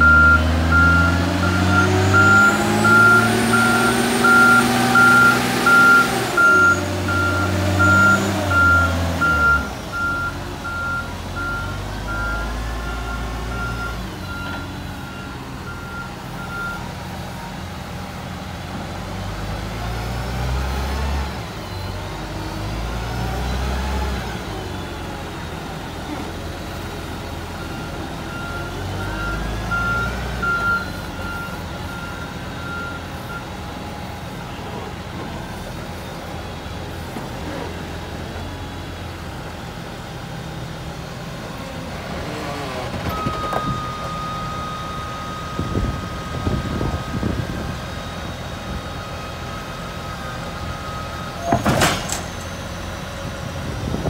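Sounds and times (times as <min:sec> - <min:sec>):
reversing alarm beeping: 0:00.0 - 0:17.6, 0:27.4 - 0:36.1, 0:43.1 - 0:52.9
diesel engine revving: 0:00.0 - 0:54.0.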